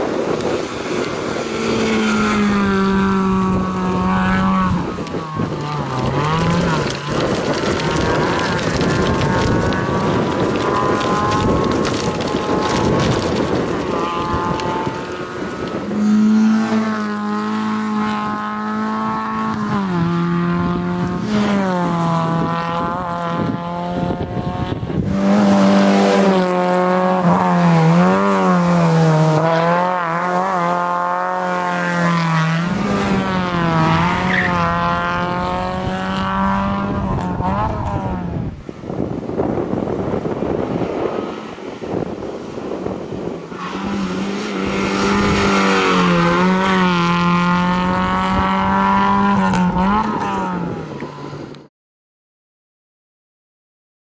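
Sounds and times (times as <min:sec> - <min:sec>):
rally car engine revving: 0:00.0 - 0:51.6.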